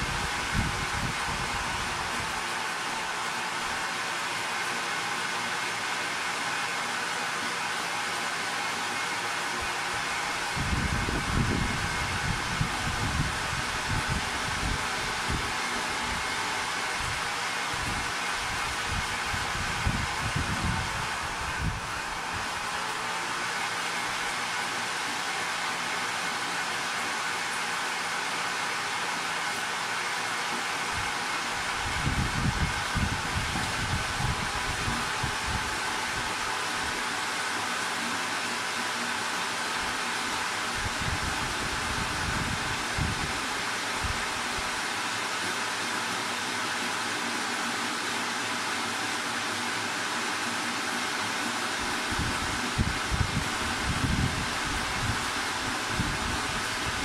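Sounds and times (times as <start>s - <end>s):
machinery whirring: 0.0s - 47.4s.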